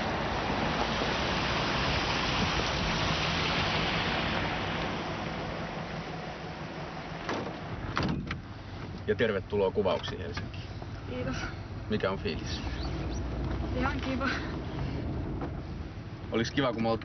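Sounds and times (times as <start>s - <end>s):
car door shutting: 7.2s - 8.5s.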